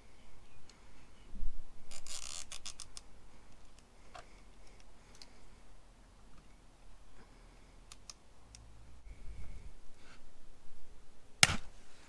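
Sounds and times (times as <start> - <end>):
cable tie ratcheting clicks: 1.9 - 3.9.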